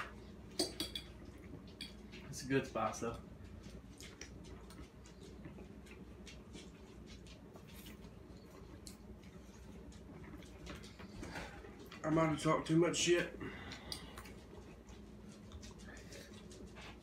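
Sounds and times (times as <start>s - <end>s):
steady low hum: 0.0s - 17.0s
forks tapping on plates: 0.6s - 2.0s.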